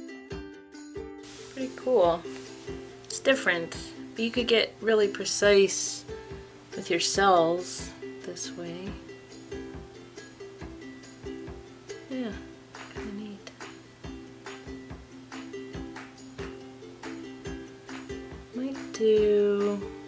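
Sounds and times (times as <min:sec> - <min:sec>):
plucked and strummed string music: 0:00.0 - 0:20.0.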